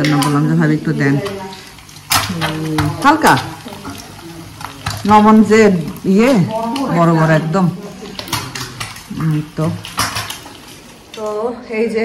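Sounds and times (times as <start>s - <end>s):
eggs frying in a pan: 0.0s - 12.0s.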